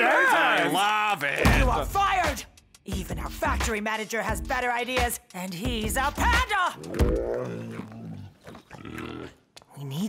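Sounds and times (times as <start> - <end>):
cartoon panda low growl: 6.8 - 9.4.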